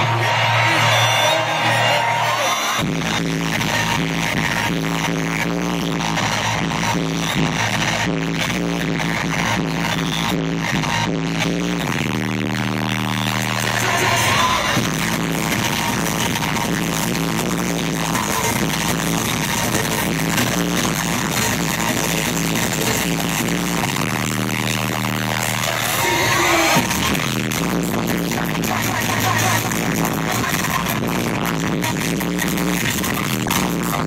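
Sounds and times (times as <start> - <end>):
electronic bass music: 0.0 - 34.0.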